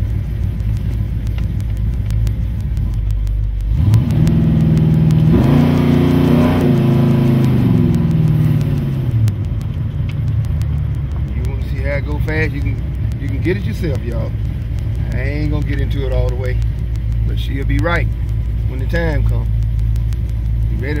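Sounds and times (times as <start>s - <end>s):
car engine rumbling: 0.0s - 21.0s.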